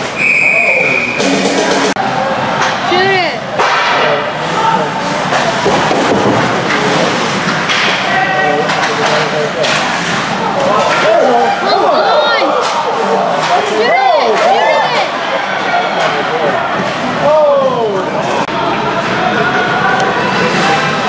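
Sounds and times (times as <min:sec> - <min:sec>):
referee's whistle: 0:00.2 - 0:01.2.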